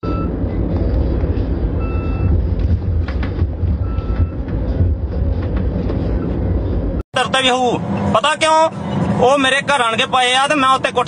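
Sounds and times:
vehicle rumble inside cabin: 0.0s - 11.0s.

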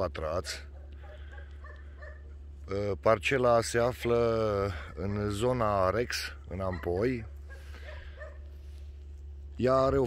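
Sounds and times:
man talking: 0.0s - 0.7s, 2.6s - 7.4s, 9.5s - 10.0s
low steady rumble: 0.0s - 10.0s
distant dog barks: 0.6s - 2.5s, 6.6s - 8.8s.

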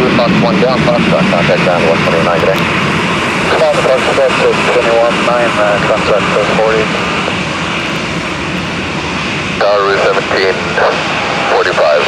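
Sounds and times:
jet engines running at low power: 0.0s - 12.0s.

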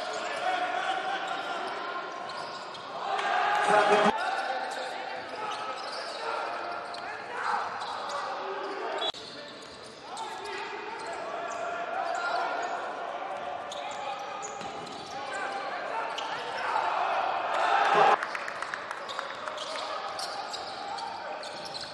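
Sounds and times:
people calling out: 3.1s - 4.2s.

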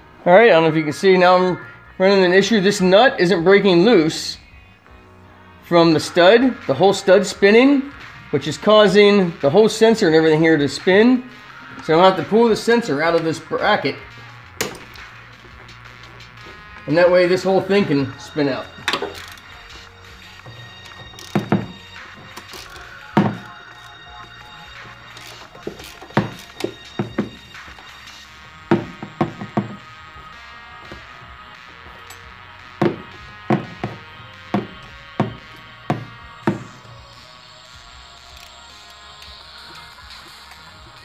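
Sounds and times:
quiet background music: 0.0s - 41.0s.

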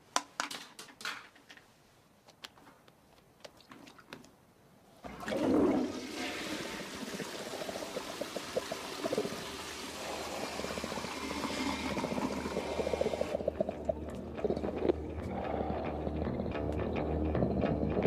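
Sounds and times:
rushing gurgling water: 5.1s - 14.6s.

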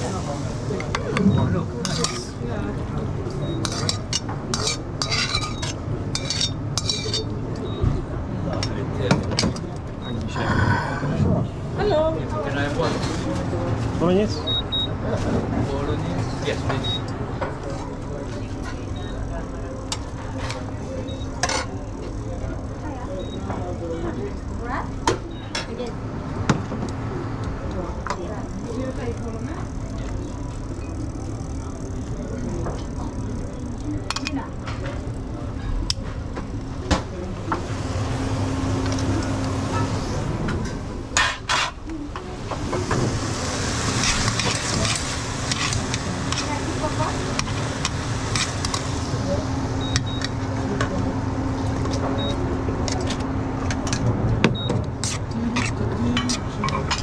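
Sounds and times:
kitchen equipment hum: 0.0s - 14.6s, 15.6s - 57.0s
background chatter: 0.0s - 57.0s
metal tongs scraping pans: 1.8s - 2.3s, 3.6s - 7.4s.

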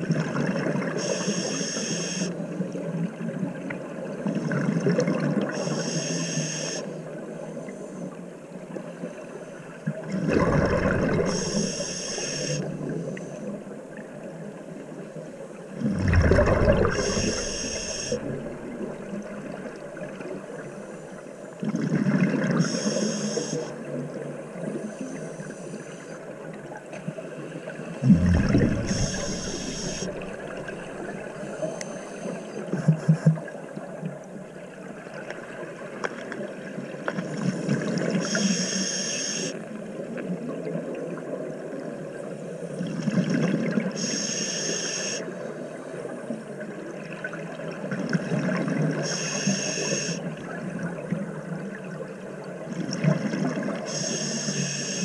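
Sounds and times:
inhaling through regulator hiss: 1.0s - 2.4s, 5.5s - 6.9s, 11.2s - 13.5s, 16.7s - 18.4s, 22.6s - 23.7s, 28.4s - 32.6s, 38.2s - 39.6s, 44.0s - 45.3s, 49.0s - 50.3s, 53.9s - 55.0s
rush of exhaled bubbles: 10.1s - 11.7s, 15.8s - 20.3s, 28.0s - 31.6s.

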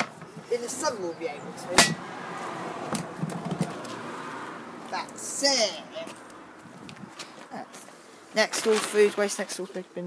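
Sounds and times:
man speaking: 0.5s - 2.0s, 4.9s - 6.2s.

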